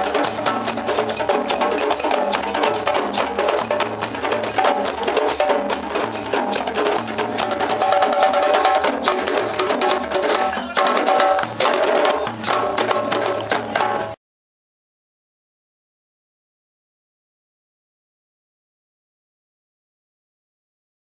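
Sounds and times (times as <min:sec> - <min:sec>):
djembe drumming: 0:00.0 - 0:14.2.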